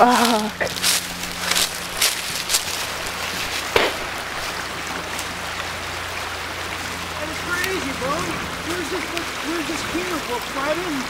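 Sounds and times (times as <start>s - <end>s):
low steady hum: 0.0s - 11.0s
steady hiss: 0.0s - 11.0s.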